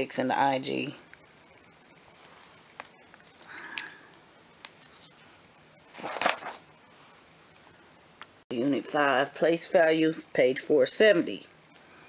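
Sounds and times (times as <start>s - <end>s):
page turning: 4.6s - 5.2s, 5.9s - 6.7s
paper handling: 5.9s - 6.7s.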